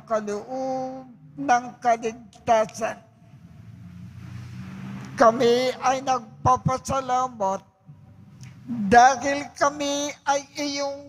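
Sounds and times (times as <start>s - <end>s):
low steady rumble: 0.6s - 7.2s, 7.8s - 9.1s.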